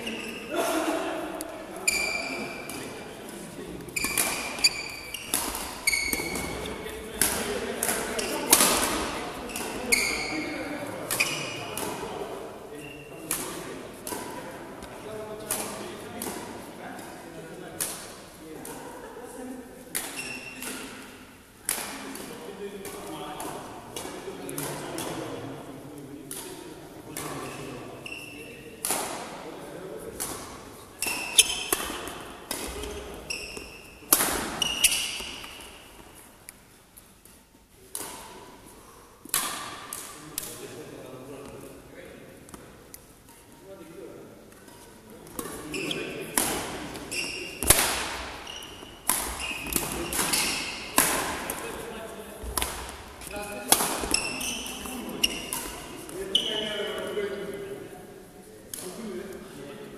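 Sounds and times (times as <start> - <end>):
shoes squeaking on floor: 0.0 - 0.5, 1.8 - 2.7, 3.9 - 6.8, 8.1 - 8.6, 9.4 - 11.8, 12.8 - 13.2, 20.1 - 20.6, 28.0 - 28.6, 31.0 - 31.8, 32.7 - 35.8, 45.5 - 46.3, 46.9 - 47.7, 48.3 - 51.0, 53.2 - 57.1
racket striking shuttlecock: 3.9 - 10.4, 13.2 - 14.4, 30.1 - 35.7, 39.2 - 40.5, 46.3 - 51.7, 52.4 - 56.2.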